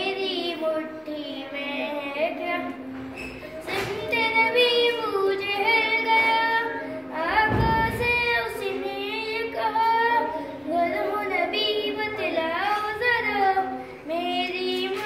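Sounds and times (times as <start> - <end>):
boy singing unaccompanied: 0.0 - 2.9, 3.5 - 15.0.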